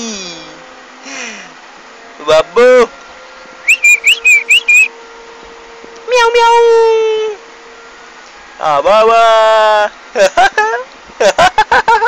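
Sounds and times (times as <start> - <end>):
rising whistled chirps: 3.6 - 5.0.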